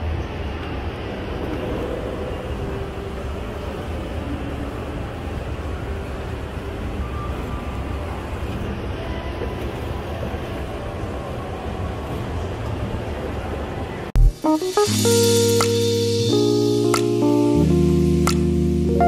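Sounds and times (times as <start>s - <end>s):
shopping mall hum: 0.0s - 19.0s.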